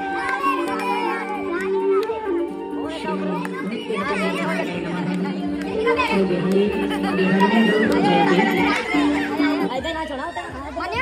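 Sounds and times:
music playing: 0.0 - 11.0
young people chattering and calling out: 0.0 - 11.0.

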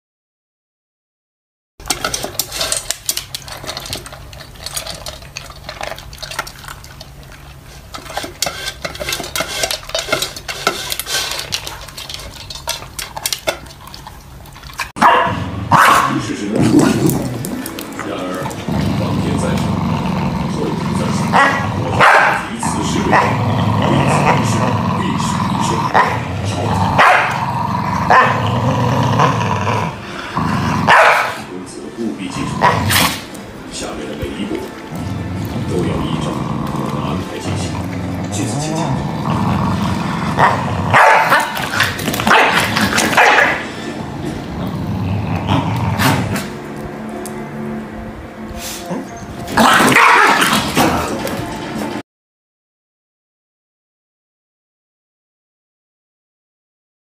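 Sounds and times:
dogs eating crunching: 1.8 - 29.2, 30.0 - 48.0, 48.6 - 52.0
dogs growling: 1.8 - 47.8, 48.5 - 52.0
dog barks: 15.0 - 16.2, 21.3 - 22.5, 27.0 - 27.4, 28.1 - 28.4, 30.9 - 31.5, 40.4 - 41.6, 42.2 - 43.7, 49.6 - 50.5.

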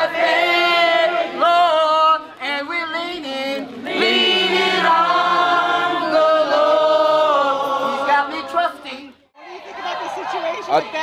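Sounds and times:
group singing held notes: 0.0 - 9.1.

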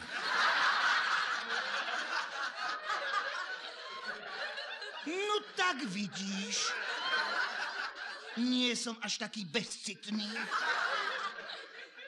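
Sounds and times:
audience laughing: 0.0 - 12.0.

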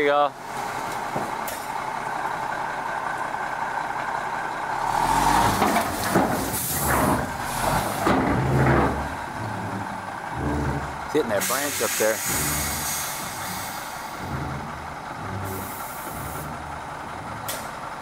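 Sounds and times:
diesel engine running: 0.0 - 18.0.

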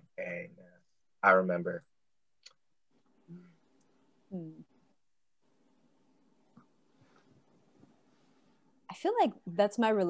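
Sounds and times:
voice: 0.0 - 0.6, 1.2 - 1.8, 4.3 - 4.6, 8.9 - 10.0
very soft small sounds: 2.4 - 9.6.

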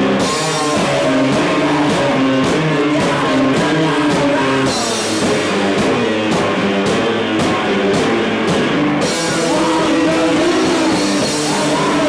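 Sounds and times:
distorted electric guitar: 0.0 - 12.0
drum kit and cymbals: 0.0 - 12.0.

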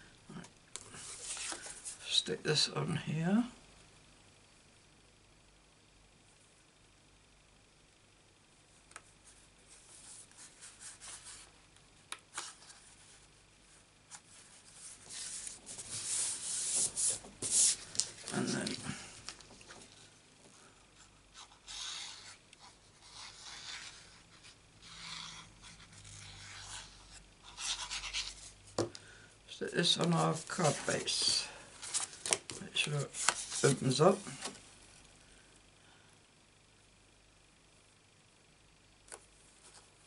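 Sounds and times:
cardstock rustling and sliding: 29.8 - 34.6.

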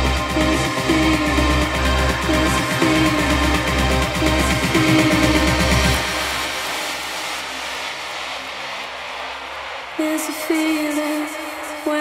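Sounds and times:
electronic noise sweep: 0.0 - 12.0.

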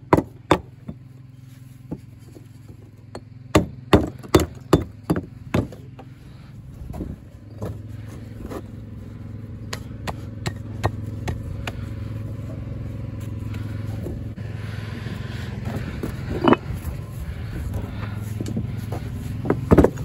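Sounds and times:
engine running steadily: 0.0 - 20.0.

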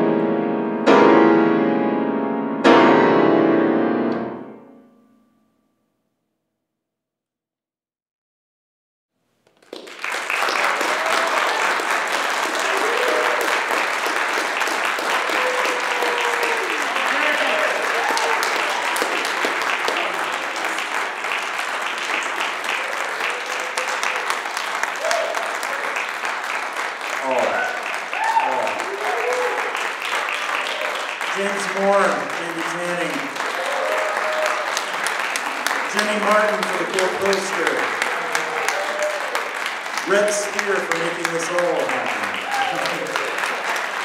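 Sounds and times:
audience applauding: 9.4 - 44.0.

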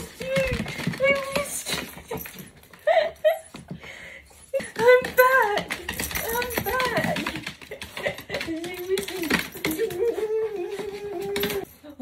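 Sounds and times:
dog claws scrabbling on wooden floor: 4.5 - 11.7
dog's high-pitched excited cries: 4.5 - 11.8.

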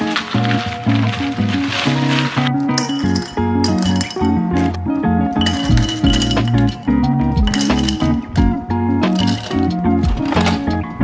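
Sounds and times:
ice cubes clinking in glass jar: 0.0 - 4.8, 5.4 - 8.2, 9.1 - 10.7
background music: 0.0 - 11.0.

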